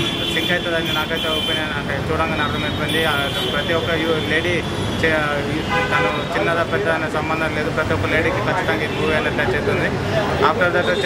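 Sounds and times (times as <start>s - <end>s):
man talking: 0.0s - 11.0s
street traffic noise: 0.0s - 11.0s.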